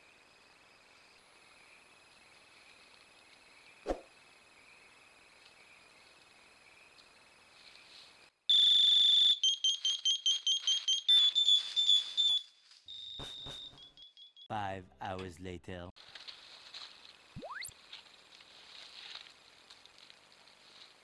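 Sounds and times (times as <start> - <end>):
crickets chirping: 0.0 - 8.4, 16.3 - 21.0
shrill electronic alarm beeps: 8.5 - 14.5.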